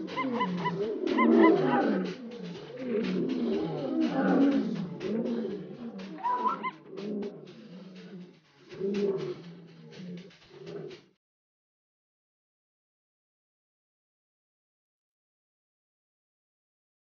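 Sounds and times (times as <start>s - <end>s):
rising whistle: 0.0s - 10.0s
animal low pitched calls: 0.0s - 11.1s.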